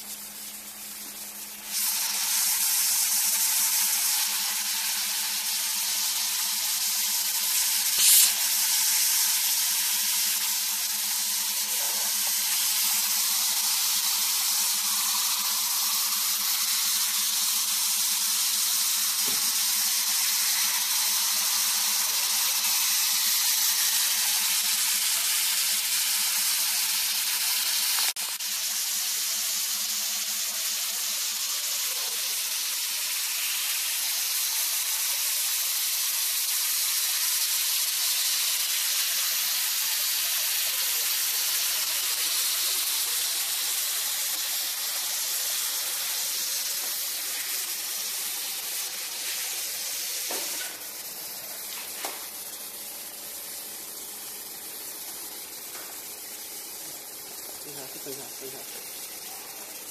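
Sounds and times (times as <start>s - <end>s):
hot air hissing from nozzle: 0.0s - 59.9s.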